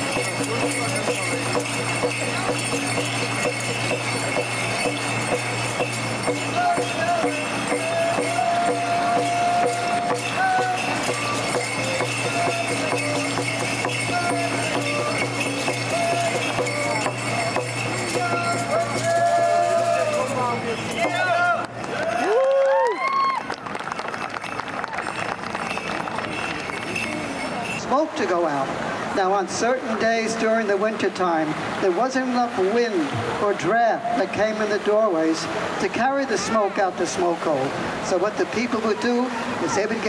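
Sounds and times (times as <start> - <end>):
fast steady percussion beat: 0.0 - 21.9
bells jingling: 0.0 - 22.4, 23.0 - 31.0
person singing: 6.5 - 17.6.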